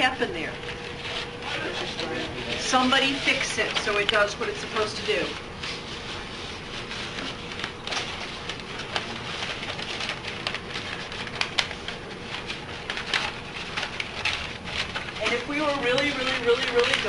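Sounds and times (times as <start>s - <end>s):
paper rustling and crinkling: 0.6s - 17.0s.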